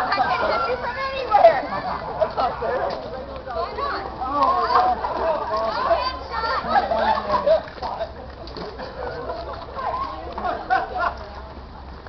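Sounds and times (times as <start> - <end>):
children and adults calling out: 0.0 - 7.8, 8.9 - 11.3.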